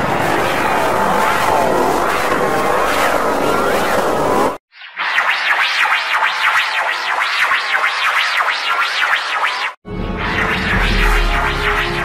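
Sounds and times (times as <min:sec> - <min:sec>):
distorted swooping logo sound: 0:04.7 - 0:12.0.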